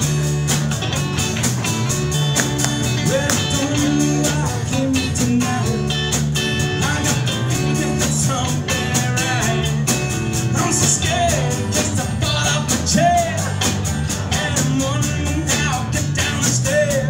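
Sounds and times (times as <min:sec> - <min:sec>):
live rock band playing: 0:00.0 - 0:17.0
lead singer singing: 0:02.4 - 0:13.6, 0:14.2 - 0:17.0.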